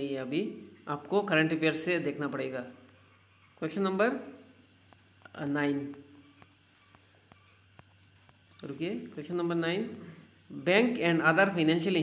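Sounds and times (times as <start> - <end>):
crickets chirring: 0.0 - 2.5, 3.2 - 12.0.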